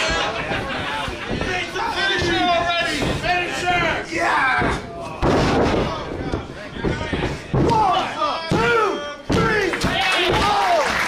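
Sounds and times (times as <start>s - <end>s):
people shouting: 1.5s - 5.2s, 7.6s - 10.9s.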